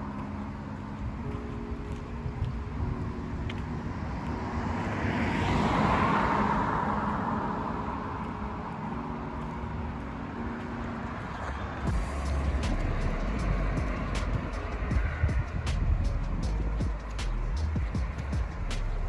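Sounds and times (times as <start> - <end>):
vehicle passing: 0.0 - 19.0
low rumble: 11.9 - 19.0.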